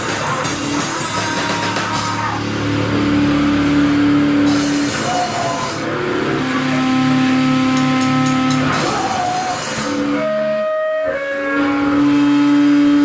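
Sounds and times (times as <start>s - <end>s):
bass notes ringing: 0.0s - 13.0s
distorted electric guitar: 0.0s - 13.0s
amplifier feedback tones: 5.2s - 13.0s.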